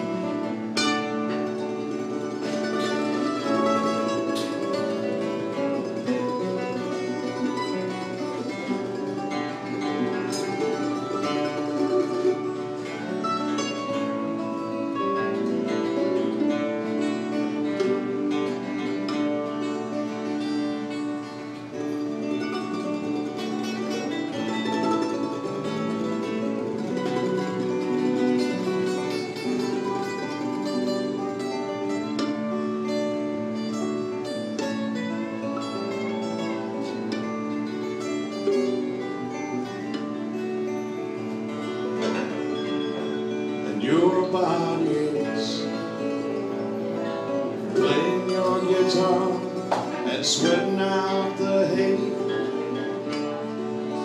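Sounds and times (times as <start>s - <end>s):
plucked guitar music: 0.0s - 54.0s.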